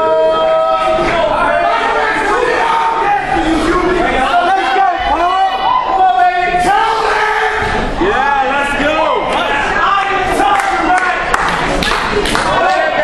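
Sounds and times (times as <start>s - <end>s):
audience cheering and shouting: 0.0s - 13.0s.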